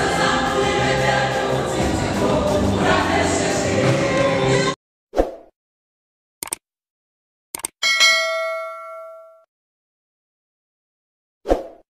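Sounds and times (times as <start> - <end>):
quick clicks: 6.4 - 6.6, 7.5 - 7.8
notification bell ding: 7.8 - 9.5.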